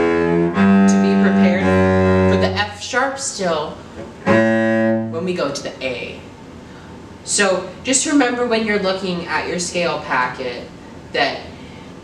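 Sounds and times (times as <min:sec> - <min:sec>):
bowed cello notes: 0:00.0 - 0:03.2, 0:04.2 - 0:05.4.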